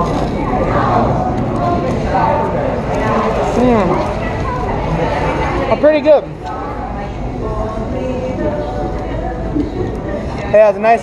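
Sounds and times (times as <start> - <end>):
background voices talking: 0.0 - 11.0.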